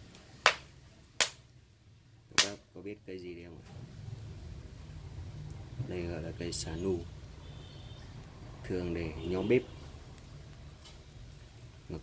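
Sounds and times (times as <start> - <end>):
sharp cracking pops in wok: 2.4 - 2.6.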